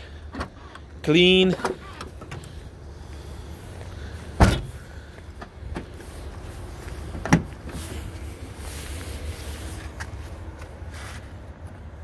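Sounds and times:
steady low rumble: 2.0 - 12.0
car door latch clunk: 4.4 - 4.7
car trunk lid slamming: 4.4 - 4.8.

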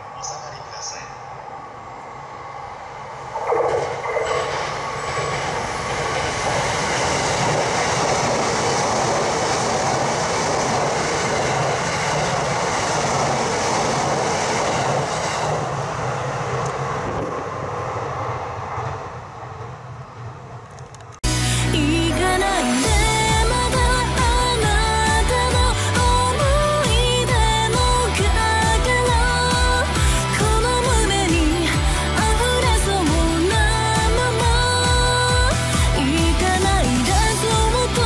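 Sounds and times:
electric train running past: 0.0 - 21.2.

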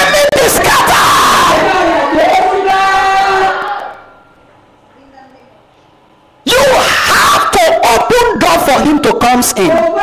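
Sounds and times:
voices shouting: 0.0 - 4.1.

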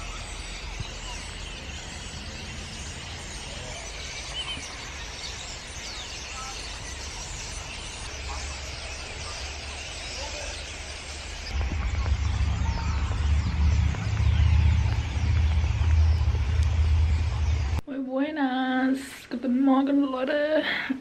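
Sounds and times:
birds chirping and singing: 0.0 - 17.8
wind rumble on microphone: 11.3 - 17.8.

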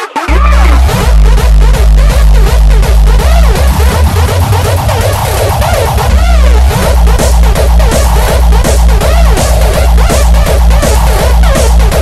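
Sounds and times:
bending synth notes: 0.0 - 12.0
electronic dance music: 0.0 - 12.0
kick drum: 0.2 - 12.0
rumbling bass: 0.2 - 12.0.

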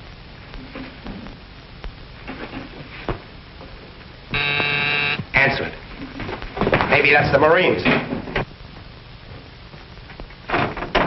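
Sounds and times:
electric door buzzer: 4.3 - 5.4.

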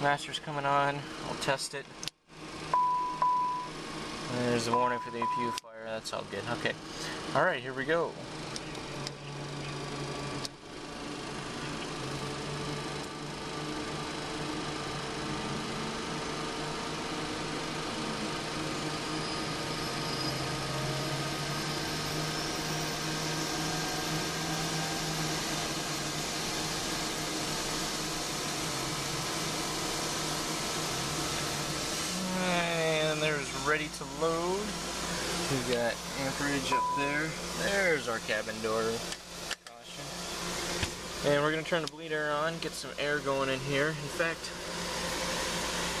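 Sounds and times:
high whine climbing: 2.5 - 46.0
small jet engine spooling up: 12.0 - 41.6, 42.2 - 46.0.

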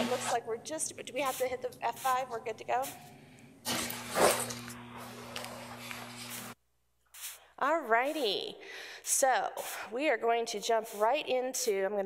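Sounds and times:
steady electrical hum: 0.0 - 6.6
breath noise on microphone: 8.6 - 10.0.

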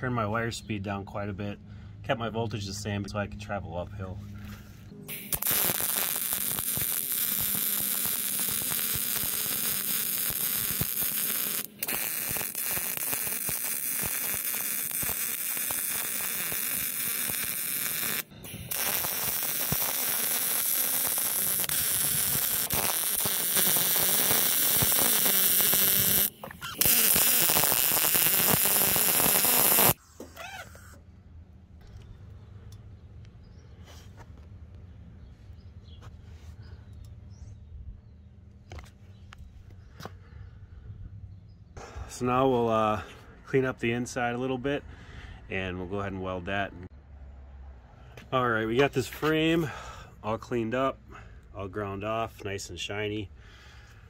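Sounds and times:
welding arc crackling hiss: 5.1 - 30.0.

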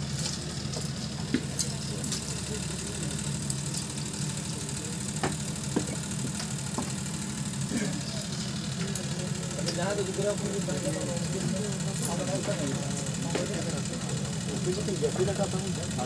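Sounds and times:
faint background voices: 0.0 - 16.0
low mechanical hum: 0.0 - 16.0.

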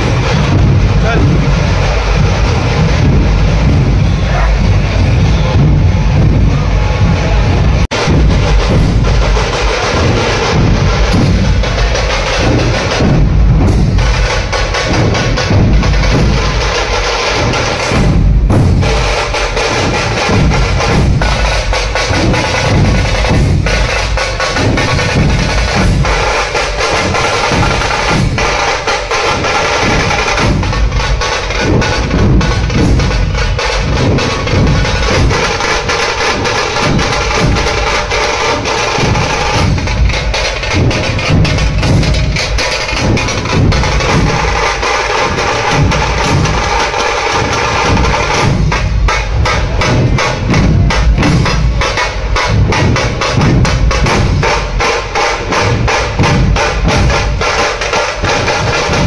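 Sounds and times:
barrel drums played with sticks: 0.0 - 59.0
sharp drum cracks: 7.9 - 59.0.

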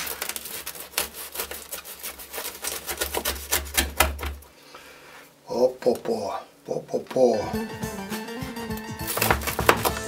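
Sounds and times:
knife sawing through bread crust: 0.0 - 4.2.

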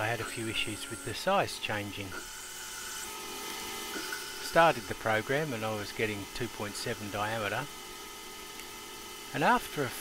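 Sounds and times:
lathe machine noise: 0.0 - 8.3
steady high whine: 0.0 - 10.0.

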